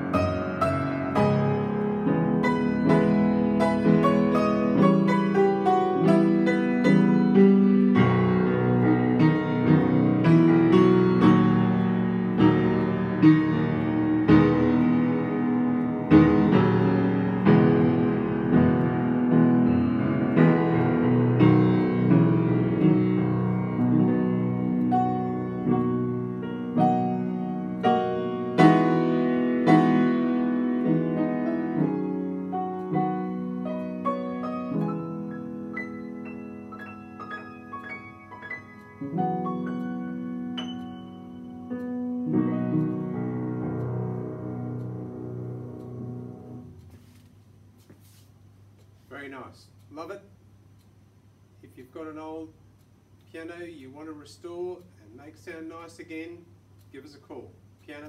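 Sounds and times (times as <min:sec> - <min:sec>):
upright piano playing: 0:00.0 - 0:46.9.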